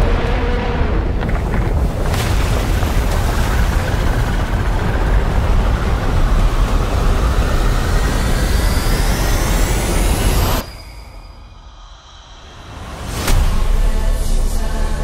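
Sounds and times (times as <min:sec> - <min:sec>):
rising whine: 0:05.4 - 0:14.7
loud dense low rumble: 0:13.3 - 0:15.0.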